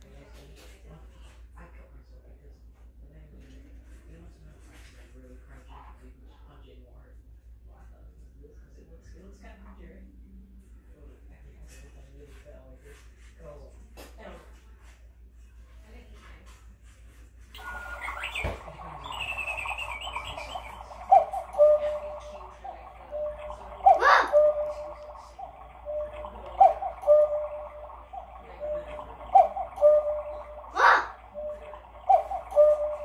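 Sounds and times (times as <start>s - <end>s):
cuckoo clock calling: 17.6s - 33.0s.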